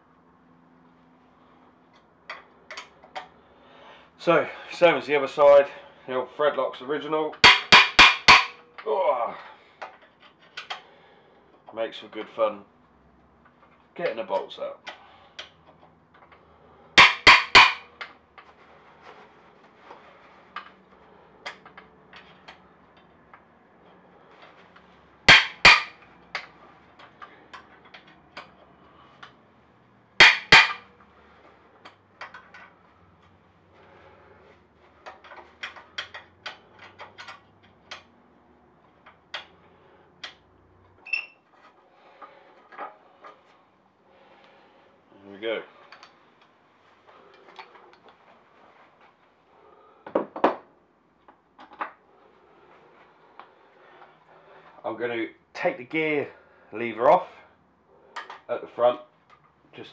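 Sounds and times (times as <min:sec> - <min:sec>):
hammer striking metal tool: 0:07.4 - 0:08.6, 0:17.0 - 0:17.9, 0:25.3 - 0:26.0, 0:30.2 - 0:30.9
tools and metal parts clicking: 0:24.7 - 0:28.6.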